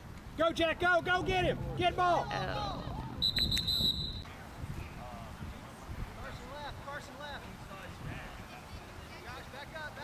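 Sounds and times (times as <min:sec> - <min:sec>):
referee's whistle blast: 0:03.2 - 0:04.3.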